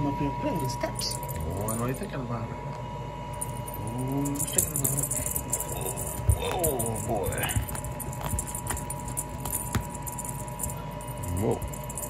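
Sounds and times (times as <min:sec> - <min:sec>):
light jingling clicks: 0:03.4 - 0:12.0.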